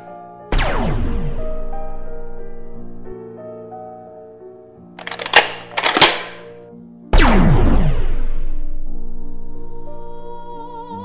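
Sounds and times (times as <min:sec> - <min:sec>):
cartoon gun blast: 0:00.5 - 0:01.4, 0:07.2 - 0:08.6
sharp clicks: 0:05.0 - 0:06.6.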